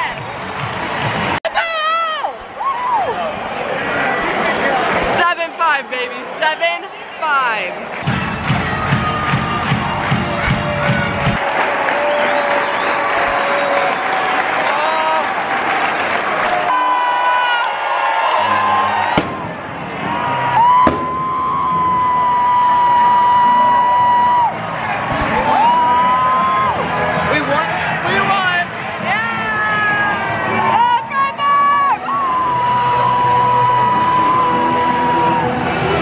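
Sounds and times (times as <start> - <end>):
crowd singing and cheering: 0.0 - 1.5, 2.2 - 36.0
music with heavy beat: 8.0 - 11.4.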